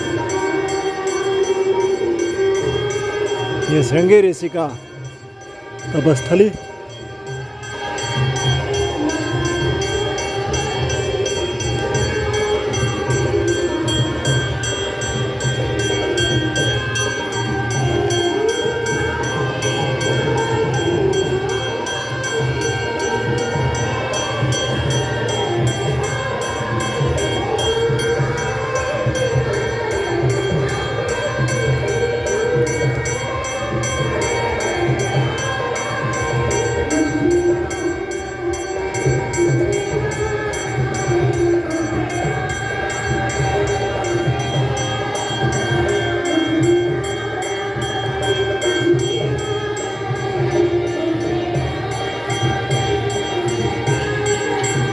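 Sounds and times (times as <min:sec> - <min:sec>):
ringing percussion rhythm: 0:00.0 - 0:54.9.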